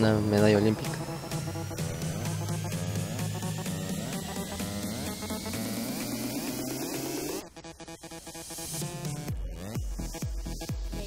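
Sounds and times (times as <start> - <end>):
rising synth sweep: 0.0 - 10.6
electronic music with steady beat: 0.0 - 11.0.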